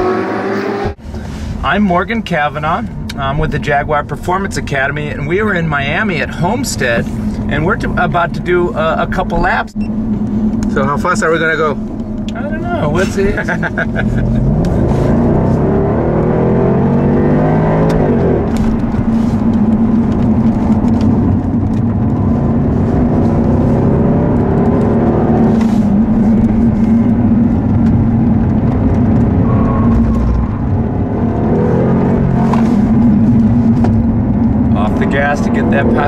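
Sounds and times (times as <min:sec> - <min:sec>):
car engine accelerating: 0:00.0 - 0:01.6, 0:04.2 - 0:36.0.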